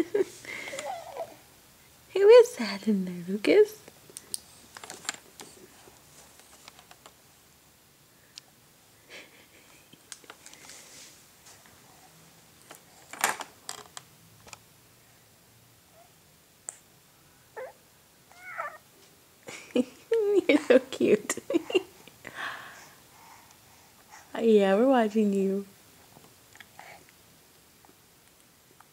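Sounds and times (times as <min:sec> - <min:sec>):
baby cooing: 0:00.7 - 0:01.5, 0:17.6 - 0:18.8.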